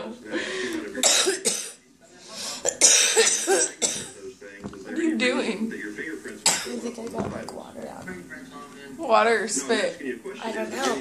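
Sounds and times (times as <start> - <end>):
person coughing hard: 1.0 - 1.8, 2.7 - 4.2, 6.4 - 6.8.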